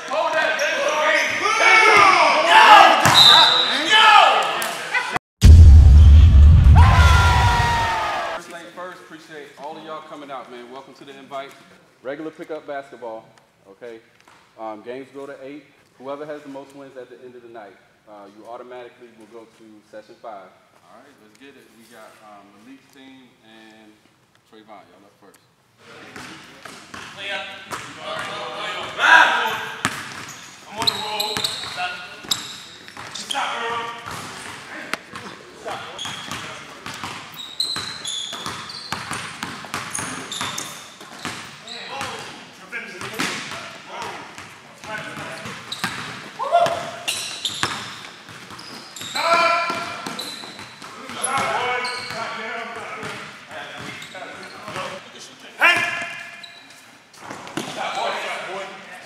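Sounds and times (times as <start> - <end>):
players calling out: 5.4 - 8.4.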